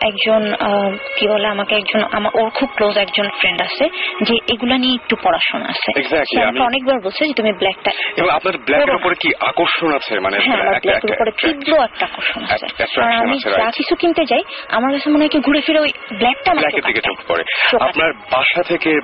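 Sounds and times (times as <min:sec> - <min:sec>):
people talking on radio: 0:00.0 - 0:19.0.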